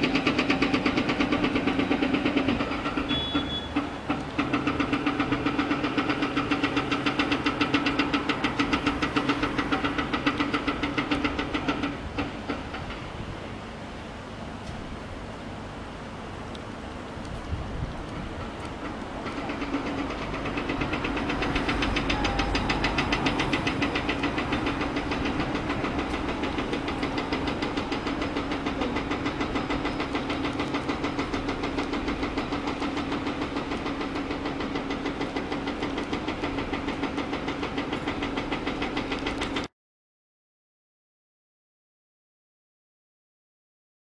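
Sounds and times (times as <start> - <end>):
diesel engine running: 0.0 - 39.7.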